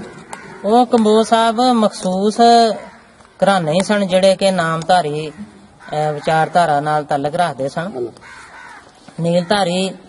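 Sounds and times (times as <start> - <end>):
crow cawing: 0.0 - 1.5, 2.6 - 3.2, 5.1 - 10.0
man speaking: 0.6 - 8.2.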